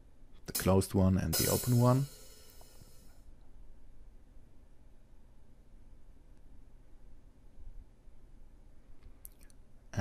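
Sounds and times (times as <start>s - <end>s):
open hi-hat ringing: 0.5s - 3.2s.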